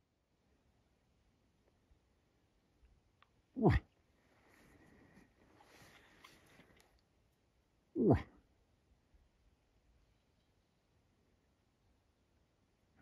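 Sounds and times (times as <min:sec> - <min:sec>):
faint rustling: 0:04.2 - 0:07.0.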